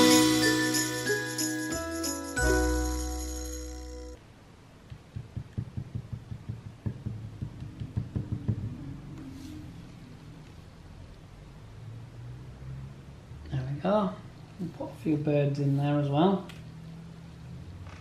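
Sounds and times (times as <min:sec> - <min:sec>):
jingly background music: 0:00.0 - 0:04.2
painting iron tapping and rubbing: 0:04.9 - 0:08.8.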